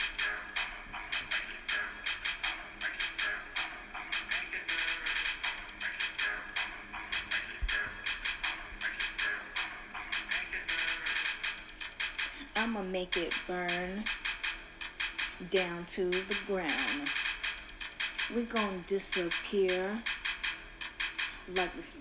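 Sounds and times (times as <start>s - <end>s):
backing music with fast percussion: 0.0s - 22.0s.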